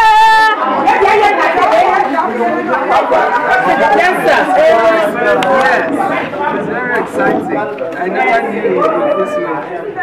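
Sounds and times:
overlapping group chatter: 0.0s - 10.0s.

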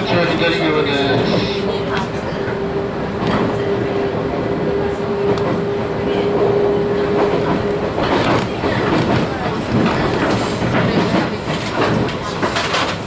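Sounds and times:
train motor hum: 0.0s - 13.0s
train wheels knocking: 5.2s - 13.0s.

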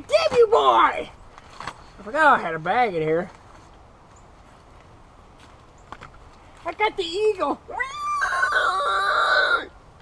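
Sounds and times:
rooster crowing: 7.9s - 9.7s.

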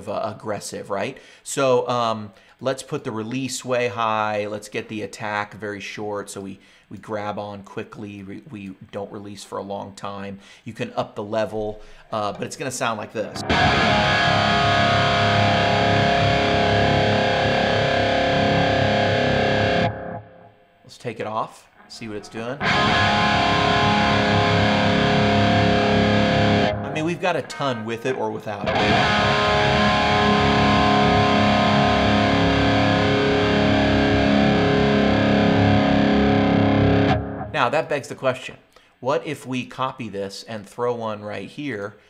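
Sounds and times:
distorted electric guitar tone: 13.3s - 20.9s, 21.6s - 37.7s.

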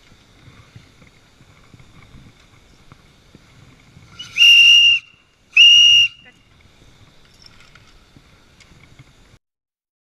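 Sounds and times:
high-pitched whistle blasts: 4.2s - 6.4s.

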